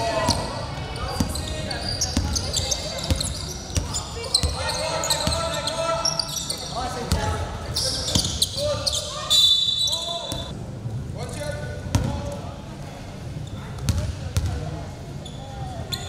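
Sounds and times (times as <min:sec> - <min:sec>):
sneakers squeaking: 0:00.0 - 0:10.5
referee's whistle: 0:07.8 - 0:10.5.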